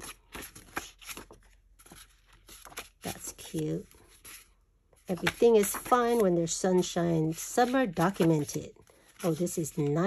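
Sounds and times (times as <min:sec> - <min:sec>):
paper cards rustling and tapping: 0:00.0 - 0:10.0.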